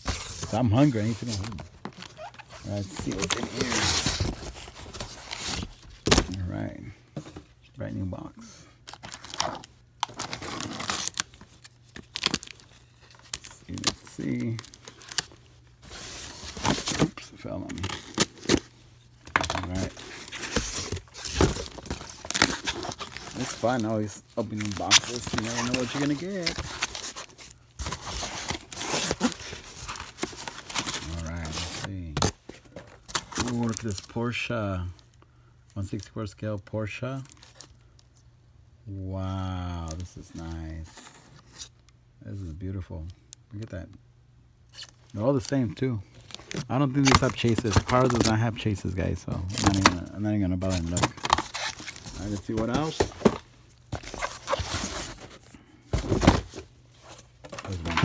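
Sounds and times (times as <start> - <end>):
cardboard rustling and scraping: 0.0 - 6.4, 12.4 - 18.7, 19.3 - 34.0, 49.5 - 58.0.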